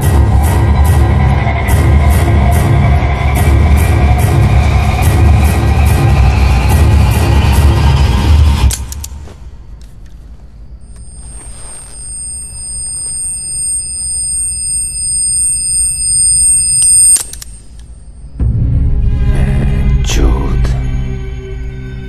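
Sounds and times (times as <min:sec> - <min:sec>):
loud music with heavy low beat: 0:00.0 - 0:08.5
high steady ringing tone: 0:10.6 - 0:18.5.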